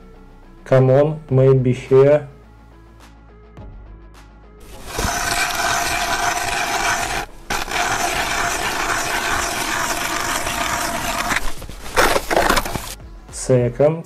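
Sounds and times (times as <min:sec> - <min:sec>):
ice auger grinding through ice: 0:04.6 - 0:13.0.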